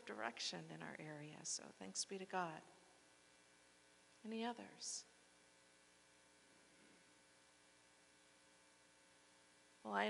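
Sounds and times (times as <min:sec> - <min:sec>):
woman's voice: 0:00.0 - 0:02.8, 0:04.2 - 0:05.1
faint electrical hum: 0:00.0 - 0:10.0.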